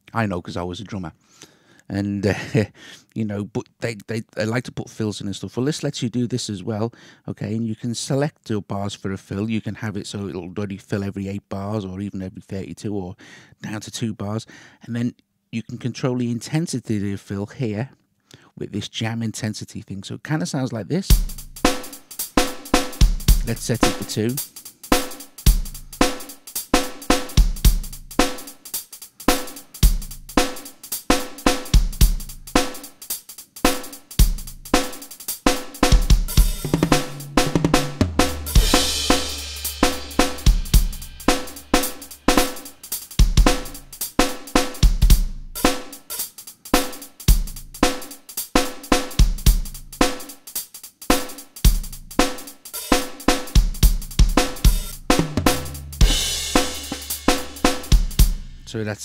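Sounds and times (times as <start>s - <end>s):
rock drum machine beat: 21.1s - 58.8s
crash cymbal: 21.2s - 44.8s, 54.5s - 58.7s.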